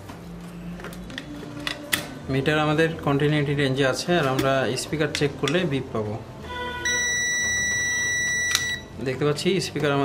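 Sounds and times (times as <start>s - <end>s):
multimeter high beep: 6.8s - 8.9s.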